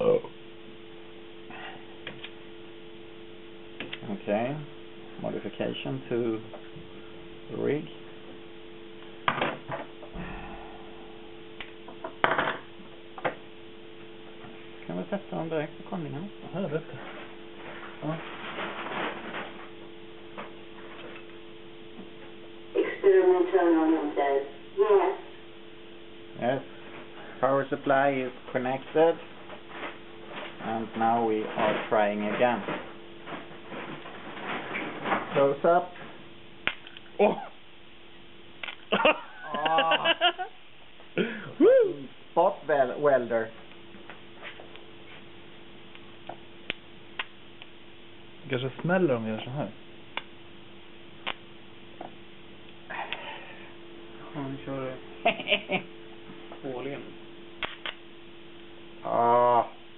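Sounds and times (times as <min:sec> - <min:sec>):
steady low hum: 0:00.0 - 0:59.9
sharp electric spark snap: 0:57.6 - 0:58.0.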